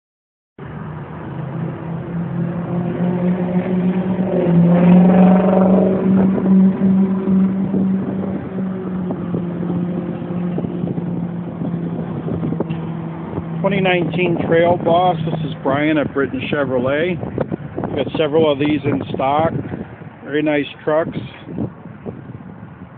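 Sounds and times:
vehicle engine running: 0.6 - 20.3.

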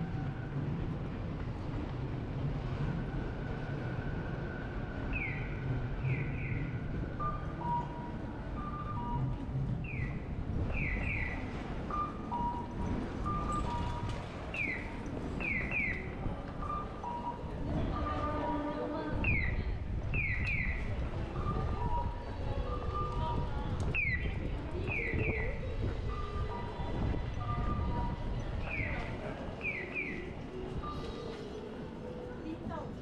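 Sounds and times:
street traffic noise: 0.0 - 33.0.

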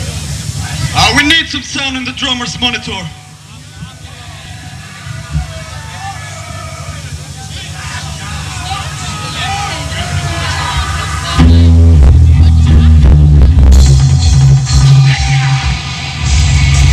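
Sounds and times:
crowd voices: 0.0 - 16.9
low steady drone: 0.0 - 16.9
black metal band playing: 9.5 - 16.9.

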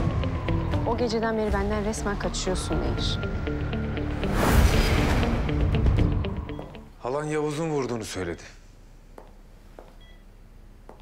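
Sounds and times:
patient monitor beep: 6.5 - 6.9, 9.9 - 10.4.

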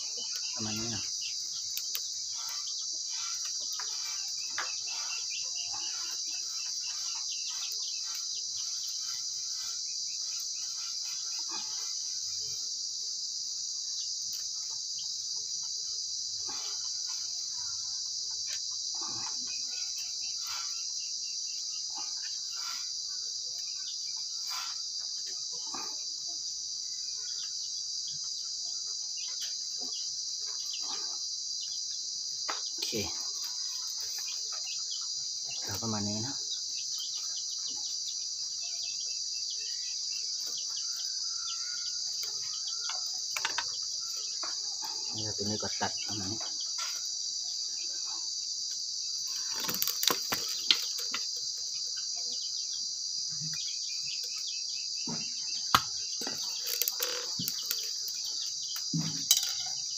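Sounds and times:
high-pitched insect chorus: 0.0 - 59.9
bamboo sticks clicking and knocking: 42.2 - 43.7, 49.5 - 51.3, 55.7 - 58.2.

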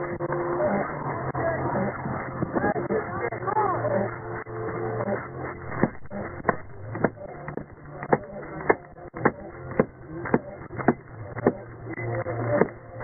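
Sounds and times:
low steady hum: 4.2 - 13.0.

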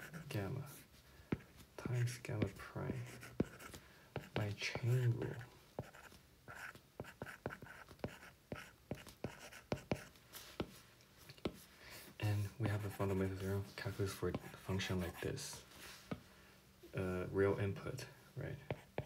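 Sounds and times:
person speaking quietly: 12.2 - 15.7.

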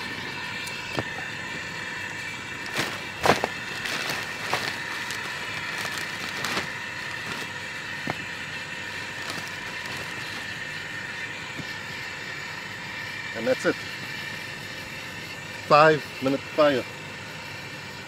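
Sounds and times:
gas torch running: 0.0 - 18.0.

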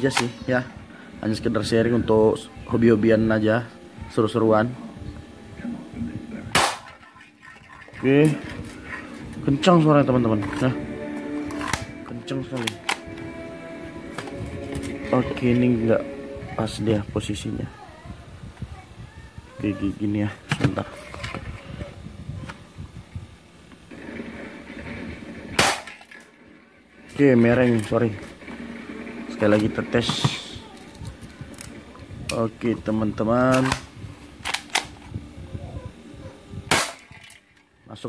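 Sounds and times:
handling noise: 6.4 - 16.6, 18.1 - 37.8
airsoft pistol shot: 6.5 - 7.0, 25.5 - 26.1, 36.7 - 37.2.

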